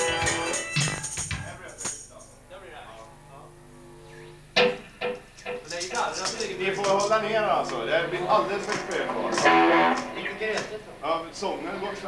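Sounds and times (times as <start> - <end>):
guitar notes ringing: 3.0 - 10.6.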